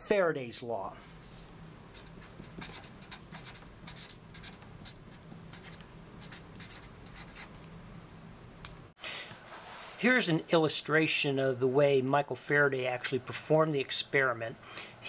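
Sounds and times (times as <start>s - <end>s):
faint low hum: 0.0s - 9.7s
marker pen writing on paper: 1.2s - 7.6s.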